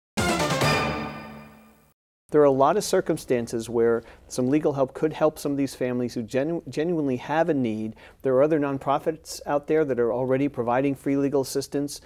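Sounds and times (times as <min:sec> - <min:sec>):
musical chord sting: 0:00.2 - 0:01.9.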